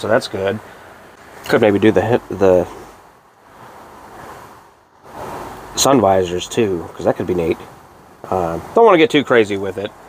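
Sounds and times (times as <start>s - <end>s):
outdoor rushing hiss: 0.0s - 10.0s.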